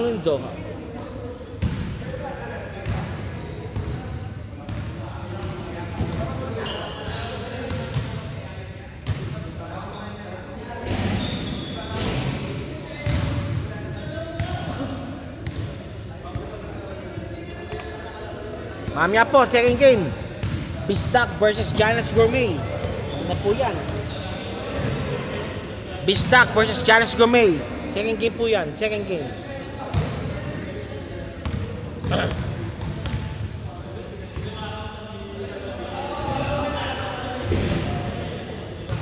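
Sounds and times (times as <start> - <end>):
basketballs bouncing on gym floor: 4.7 - 6.4, 12.9 - 13.6, 15.4 - 16.5, 19.6 - 24.2, 31.4 - 33.5.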